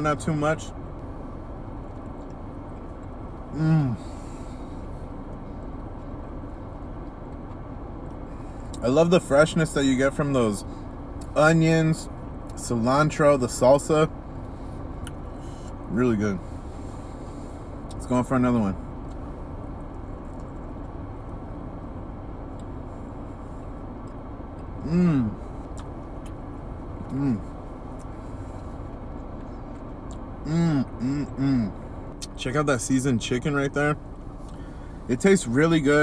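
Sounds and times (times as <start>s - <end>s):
car cabin hum: 0.0s - 36.0s
man speaking: 35.1s - 36.0s.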